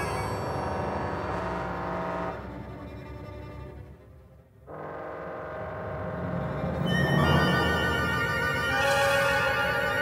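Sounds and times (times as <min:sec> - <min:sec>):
chamber orchestra sustained chord: 0:04.7 - 0:10.0.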